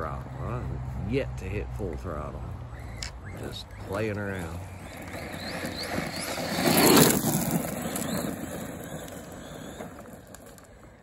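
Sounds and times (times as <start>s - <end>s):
tyres crunching over gravel: 0.0s - 11.0s.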